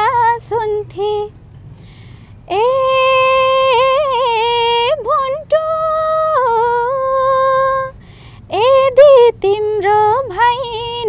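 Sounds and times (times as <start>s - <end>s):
woman singing unaccompanied: 0.0s - 1.3s, 2.5s - 11.0s.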